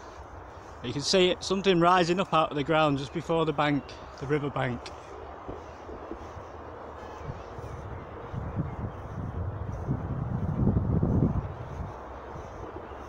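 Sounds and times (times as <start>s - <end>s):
steady hiss: 0.0s - 13.0s
wind buffeting microphone: 0.0s - 13.0s.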